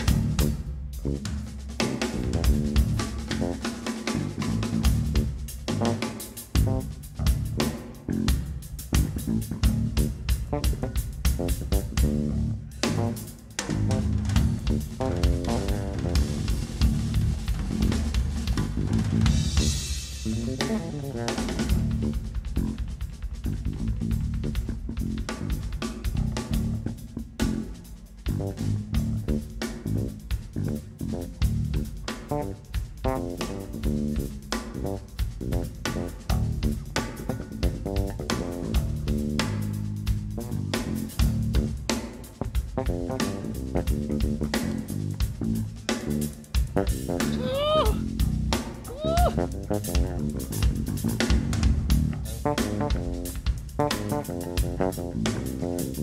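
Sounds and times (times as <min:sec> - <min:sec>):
electric bass guitar: 0:00.0 - 0:41.9, 0:42.7 - 0:56.0
fast drumming on drum kit: 0:00.0 - 0:56.0.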